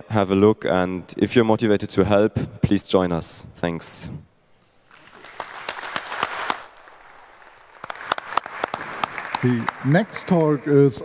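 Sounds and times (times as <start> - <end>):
audience applauding: 4.9 - 11.0.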